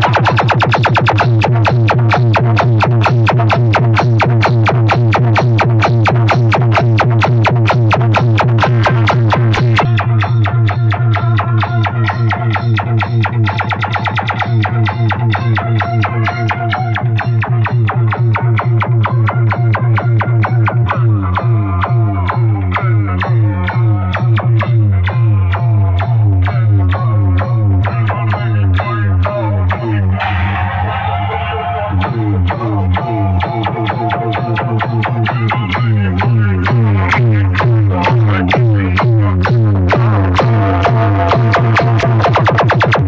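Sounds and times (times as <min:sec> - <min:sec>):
loud electronic dance music: 0:00.0 - 0:43.0.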